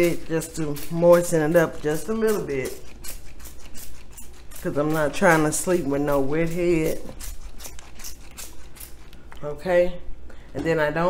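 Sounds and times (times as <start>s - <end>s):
spray bottle spraying: 0.0s - 9.3s.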